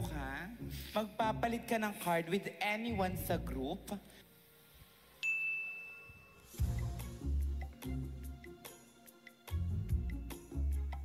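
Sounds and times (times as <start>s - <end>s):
high ringing chime: 5.2s - 7.0s.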